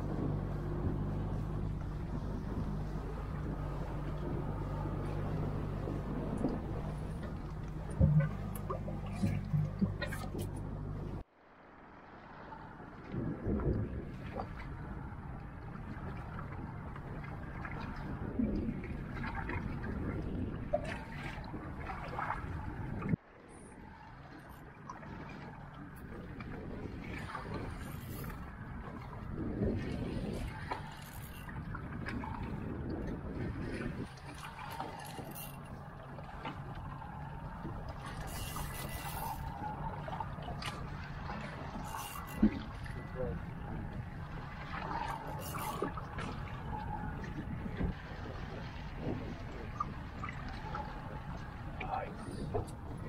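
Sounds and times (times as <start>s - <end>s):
water washing against boat: 0.0s - 53.0s
wind: 0.0s - 53.0s.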